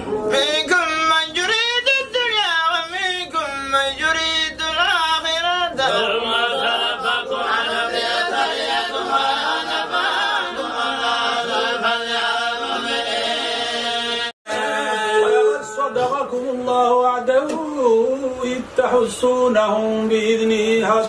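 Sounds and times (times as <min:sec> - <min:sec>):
men chanting in unison: 0:04.5 - 0:21.0.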